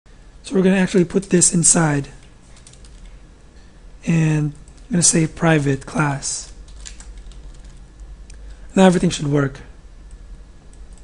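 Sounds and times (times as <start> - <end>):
keyboard typing: 2.2 - 3.2, 6.4 - 7.8.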